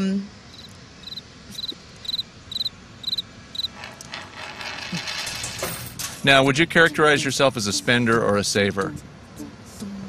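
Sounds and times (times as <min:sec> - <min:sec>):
crickets chirping: 0:00.5 - 0:03.7.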